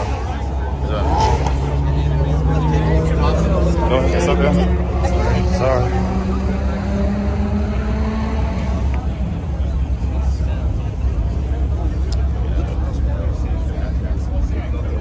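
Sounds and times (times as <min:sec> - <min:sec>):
car engine running: 0:00.0 - 0:15.0
crowd chatter: 0:00.0 - 0:15.0.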